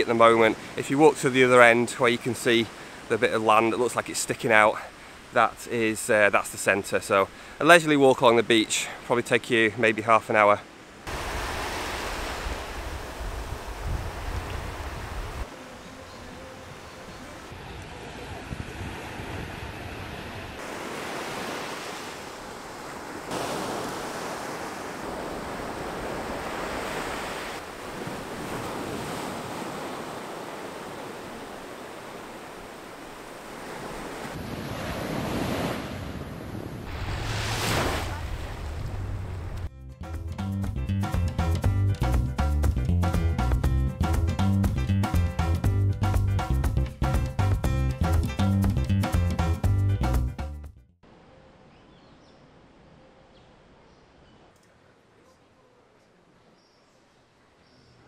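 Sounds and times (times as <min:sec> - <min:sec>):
ocean surf breaking: 0:00.0 - 0:39.7
wind buffeting microphone: 0:11.1 - 0:15.5, 0:17.5 - 0:20.6
music: 0:39.7 - 0:51.0.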